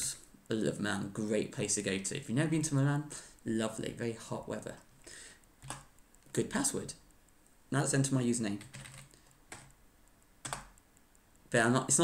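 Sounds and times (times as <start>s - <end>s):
keyboard keystrokes: 5.6s - 5.9s, 8.5s - 9.8s, 10.4s - 10.8s.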